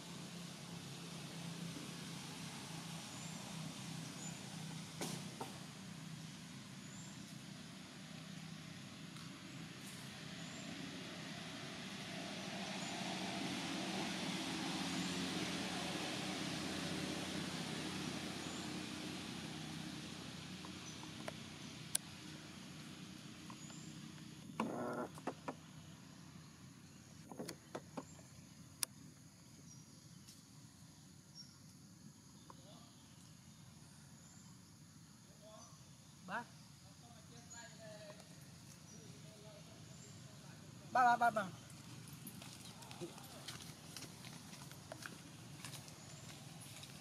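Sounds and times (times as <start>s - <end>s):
motor vehicle passing by: 0.0s - 27.1s, 37.4s - 47.0s.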